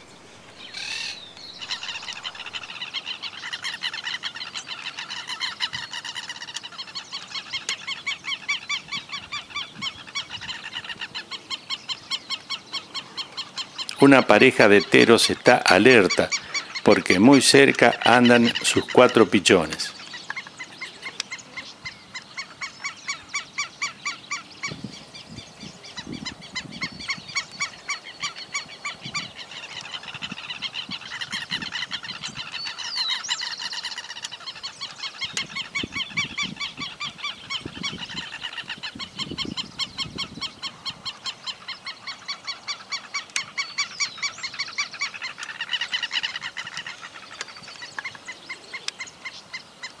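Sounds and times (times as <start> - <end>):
lapwings alarm calls: 0.0 - 50.0.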